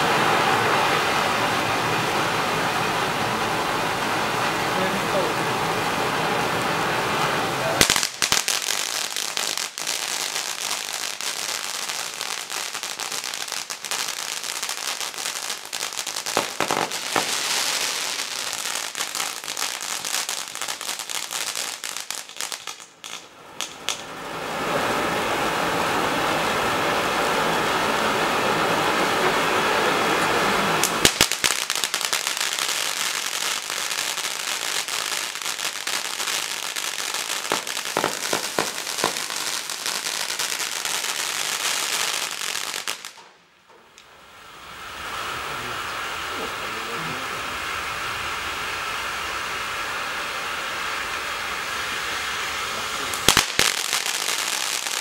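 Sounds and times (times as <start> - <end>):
sharp firework cracks: 0.0 - 24.6, 30.0 - 55.0
firework hissing: 0.0 - 43.3, 43.9 - 55.0
firework crackling: 0.0 - 55.0.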